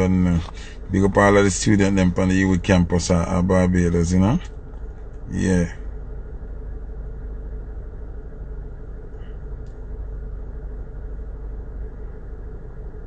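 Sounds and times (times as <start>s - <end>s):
faint hum: 0.0s - 13.0s
low background rumble: 0.0s - 13.0s.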